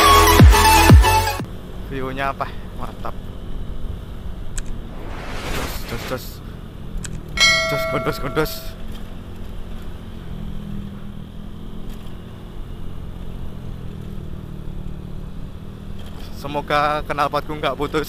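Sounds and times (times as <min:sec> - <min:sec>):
road and wind noise: 0:01.4 - 0:18.0
loud ringing tone: 0:07.4 - 0:08.8.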